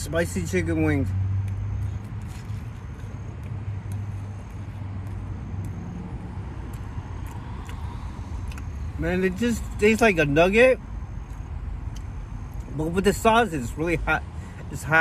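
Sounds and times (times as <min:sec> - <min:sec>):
car engine low hum: 0:00.0 - 0:15.0
person chewing food: 0:01.4 - 0:09.0, 0:11.1 - 0:12.7.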